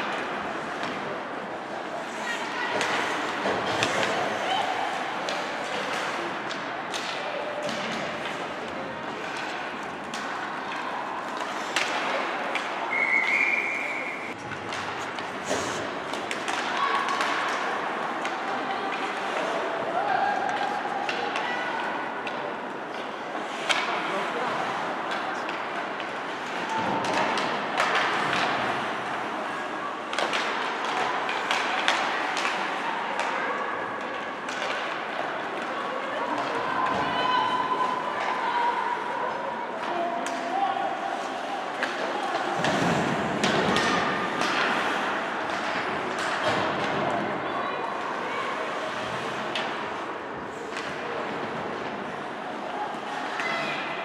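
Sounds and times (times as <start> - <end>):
hockey sticks and puck clacking: 0.0 - 38.8, 39.7 - 54.0.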